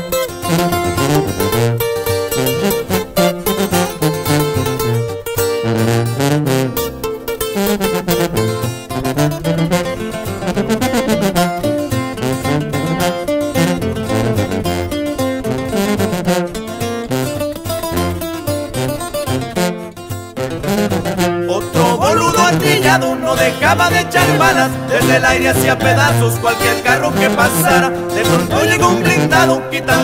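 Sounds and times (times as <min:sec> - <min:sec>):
acoustic guitars plucked lead: 0:00.0 - 0:30.0
bass line: 0:00.3 - 0:16.3, 0:20.8 - 0:30.0.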